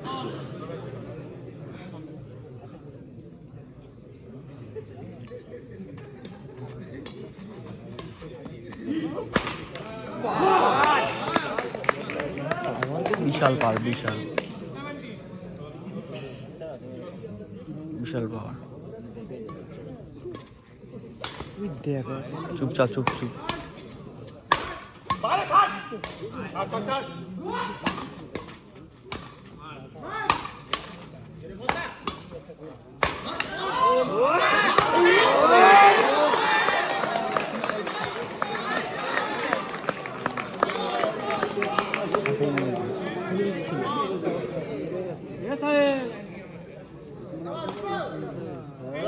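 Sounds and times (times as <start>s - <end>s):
rackets hitting shuttlecock: 7.9s - 9.9s, 21.2s - 21.6s, 24.5s - 26.3s, 27.8s - 29.5s, 30.2s - 33.7s
loud shout: 10.1s - 11.6s, 33.3s - 39.7s.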